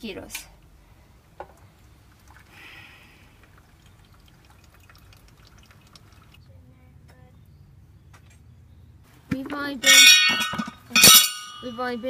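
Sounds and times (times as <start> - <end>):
water trickling into a cup: 1.8 - 6.4.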